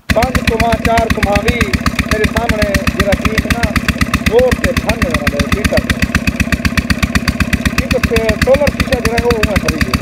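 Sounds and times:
engine thumping: 0.0 - 10.0.

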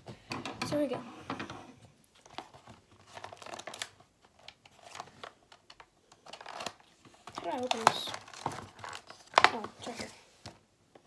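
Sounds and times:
cardboard crinkling and tearing: 2.2 - 5.6, 6.2 - 10.2.

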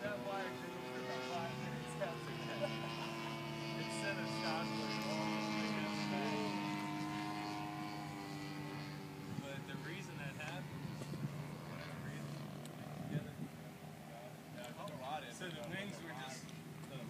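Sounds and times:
model plane engine drone: 0.0 - 17.0.

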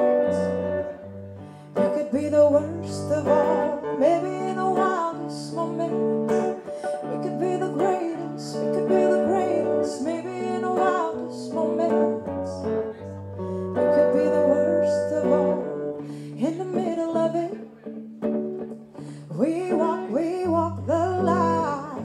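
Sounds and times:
woman singing pop ballad: 0.0 - 0.9, 1.6 - 17.8, 19.2 - 22.0
electric guitar chords: 0.0 - 22.0.

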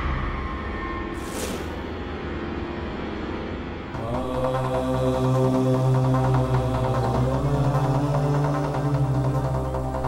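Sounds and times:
low drone: 0.0 - 10.0
dramatic held notes: 3.9 - 10.0.

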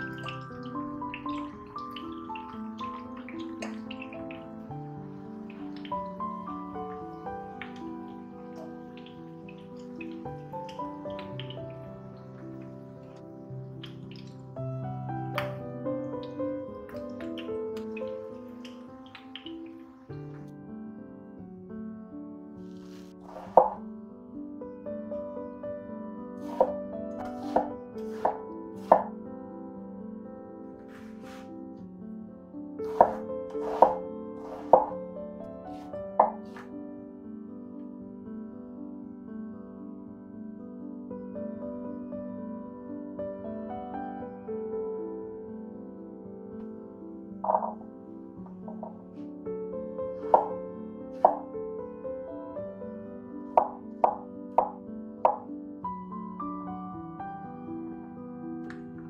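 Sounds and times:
soft background music: 0.0 - 59.0
knife knocking on wooden board: 23.4 - 23.8, 32.9 - 34.9, 36.2 - 36.6, 47.5 - 47.8
knife chopping on wooden board: 26.5 - 29.1, 32.9 - 34.9.

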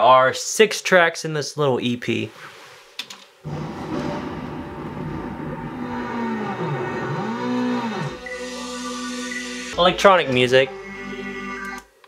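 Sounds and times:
electronic synth music: 3.5 - 12.0.

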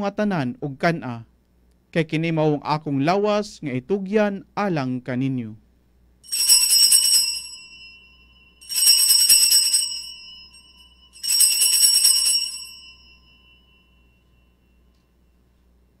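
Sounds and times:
altar bells jangling: 6.2 - 15.4.

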